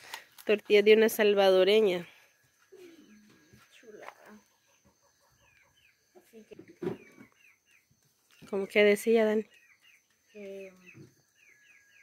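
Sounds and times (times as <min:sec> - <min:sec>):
faint bird calls: 0:02.6 - 0:08.6.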